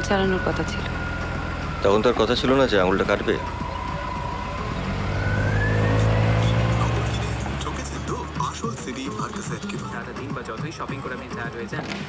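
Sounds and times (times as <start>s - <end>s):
car engine running: 0.0s - 11.8s.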